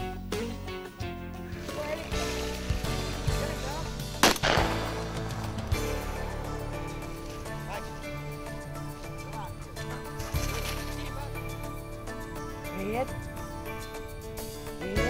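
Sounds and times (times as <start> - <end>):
background music: 0.0 - 15.0
shotgun shot: 4.2 - 6.3.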